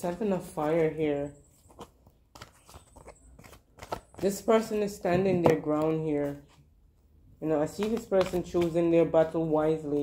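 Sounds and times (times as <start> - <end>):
cards clicking and rustling: 0.0 - 6.7, 7.5 - 10.0.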